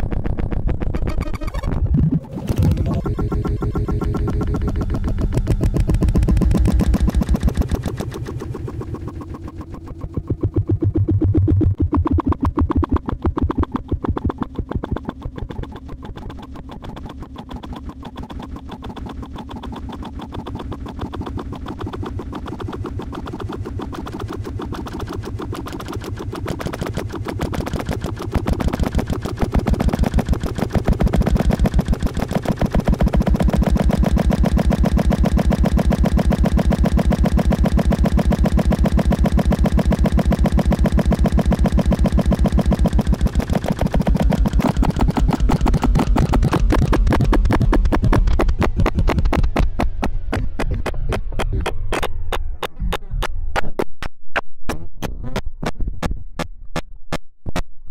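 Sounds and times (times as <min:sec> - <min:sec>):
electronic throbbing pulses: 0:00.0 - 0:54.1
low drone: 0:01.0 - 0:45.6.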